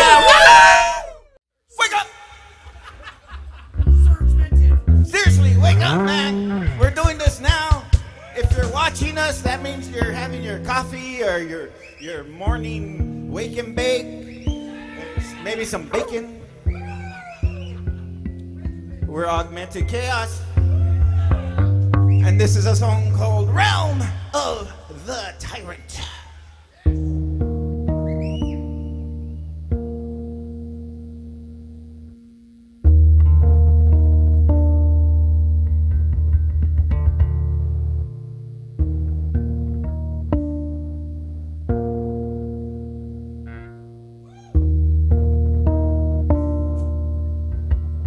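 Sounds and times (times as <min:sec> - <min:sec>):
electric guitar and bass chords: 0:03.7 - 0:25.1, 0:26.9 - 0:48.0.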